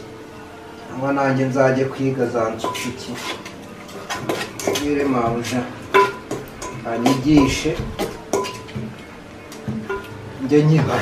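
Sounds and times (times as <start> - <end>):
dishes clinking and knocking: 2.6 - 10.2.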